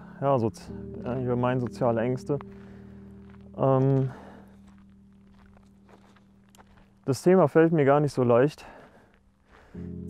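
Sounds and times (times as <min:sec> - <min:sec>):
low steady hum: 0:00.0 - 0:07.1
footsteps on dirt path: 0:00.7 - 0:09.9.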